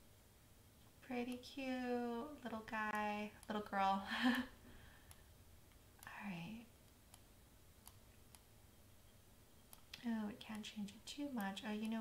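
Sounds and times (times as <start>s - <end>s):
computer mouse clicks: 2.9s - 3.6s, 6.8s - 8.5s, 9.6s - 12.0s.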